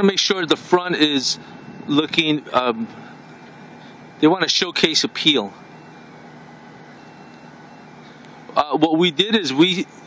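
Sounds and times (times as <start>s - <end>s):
outdoor ambience hiss: 0.0s - 10.0s.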